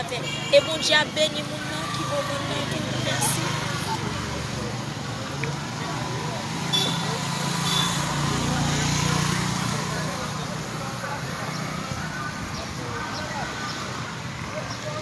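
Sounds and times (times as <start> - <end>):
outdoor background noise: 0.0 - 15.0.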